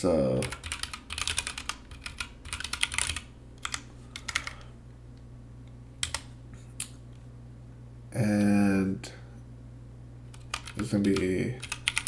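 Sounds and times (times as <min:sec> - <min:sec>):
typing on computer keyboard: 0:00.4 - 0:04.7, 0:06.0 - 0:06.3, 0:10.4 - 0:12.0.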